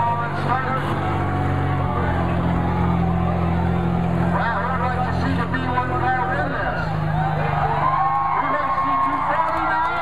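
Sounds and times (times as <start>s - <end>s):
car engine running at low revs: 0.0s - 10.0s
crowd chatter and shouts: 0.0s - 10.0s.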